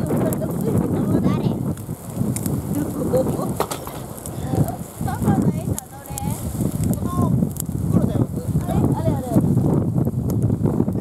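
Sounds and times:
people talking indistinctly: 0.0s - 9.7s.

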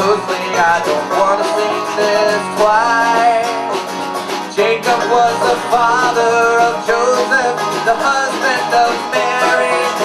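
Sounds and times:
man singing: 0.0s - 3.8s, 4.4s - 10.0s
acoustic guitar: 0.0s - 10.0s
banjo: 0.0s - 10.0s.

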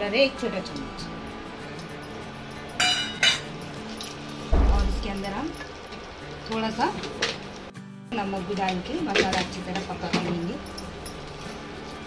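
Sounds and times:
steel plate clinking on wok rim: 2.8s - 3.6s
dull low thump: 4.5s - 5.8s.

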